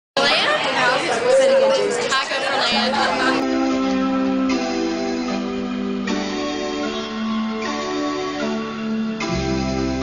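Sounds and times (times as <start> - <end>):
woman talking loudly: 0.2 - 3.4.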